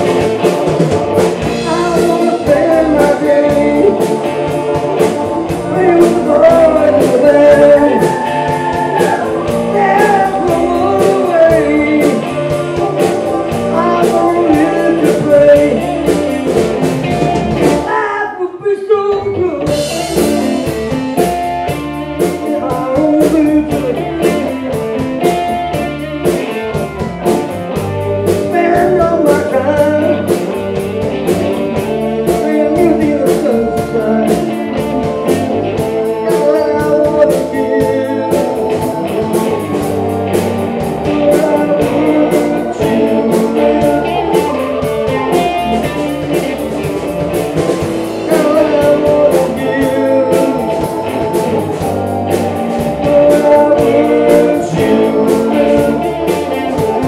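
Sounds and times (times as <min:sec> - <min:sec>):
live blues band playing: 0:00.0 - 0:57.0.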